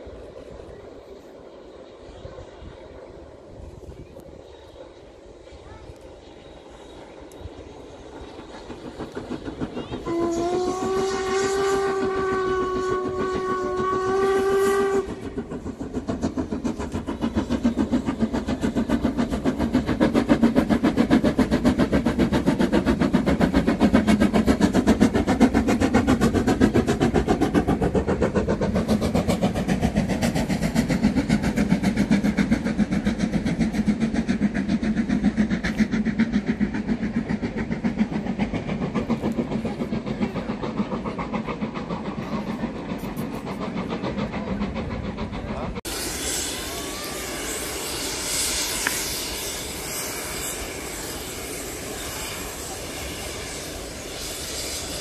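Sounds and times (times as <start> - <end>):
train wheels clattering: 6.7 - 55.0.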